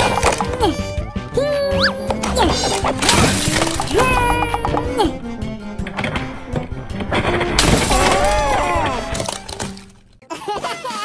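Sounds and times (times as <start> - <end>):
plastic toy cracking and shattering: 0.0 - 0.6, 2.2 - 4.3, 7.1 - 10.0
background music: 0.0 - 11.0
cartoonish voice-like sound: 0.5 - 2.9, 3.9 - 5.2.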